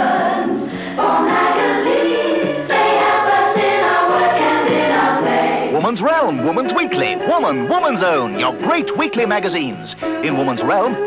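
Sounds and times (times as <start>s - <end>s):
choir singing jingle: 0.0s - 11.0s.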